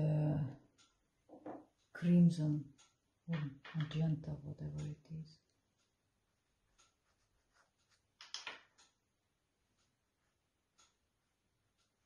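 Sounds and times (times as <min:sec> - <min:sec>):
paintbrush strokes on paper: 0:06.2 - 0:08.2.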